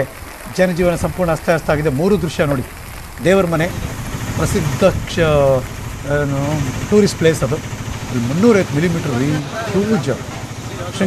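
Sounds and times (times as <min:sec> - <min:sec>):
narrator speaking: 0:00.0 - 0:11.0.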